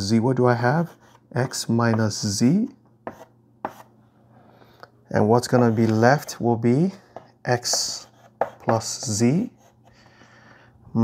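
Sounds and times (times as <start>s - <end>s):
faint chalk scraping: 0.6s - 2.1s, 3.0s - 3.9s, 5.4s - 10.2s
chalk tapping on blackboard: 3.0s - 3.9s, 5.4s - 6.4s, 7.1s - 9.8s.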